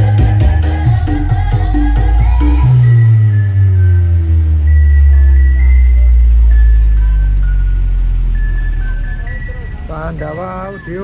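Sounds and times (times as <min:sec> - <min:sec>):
deep bass tone with falling sweep: 0:00.0 - 0:11.0
electronic dance music: 0:00.0 - 0:11.0
short high synth notes: 0:00.0 - 0:11.0.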